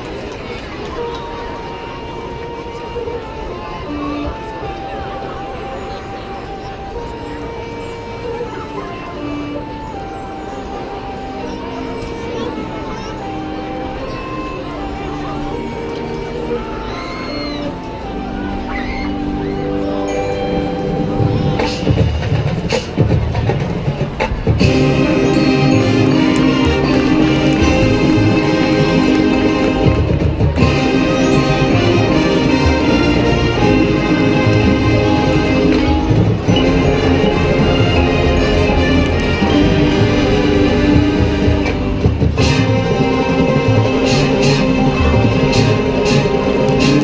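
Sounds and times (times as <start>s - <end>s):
marching band chords: 19.2s - 47.0s.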